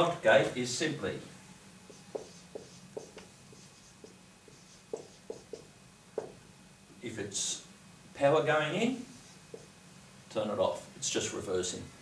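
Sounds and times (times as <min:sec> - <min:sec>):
marker scratching on whiteboard: 0:01.9 - 0:06.4, 0:09.1 - 0:09.8
marker tapping on whiteboard: 0:01.9 - 0:06.4, 0:09.5 - 0:09.7.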